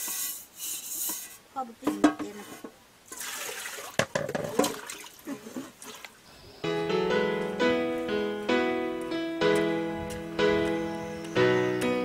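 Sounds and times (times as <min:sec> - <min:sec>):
water splashing and sloshing: 0:03.1 - 0:06.3
metal pot knocking: 0:04.0 - 0:04.7.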